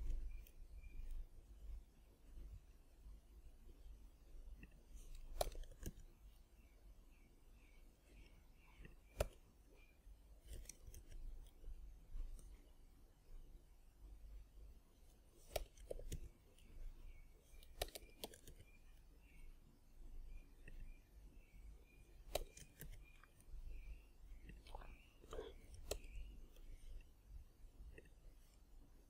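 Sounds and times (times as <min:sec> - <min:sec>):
computer keyboard keystrokes: 0:17.6 - 0:18.6.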